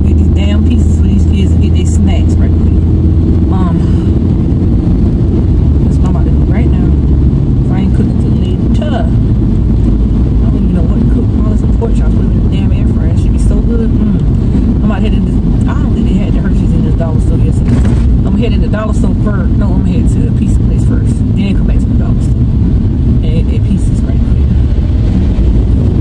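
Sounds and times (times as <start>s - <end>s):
woman speaking: 0.0s - 2.8s, 3.5s - 4.2s, 5.8s - 7.0s, 7.6s - 9.2s, 10.4s - 22.4s, 23.2s - 24.6s
car interior rumble: 0.0s - 26.0s.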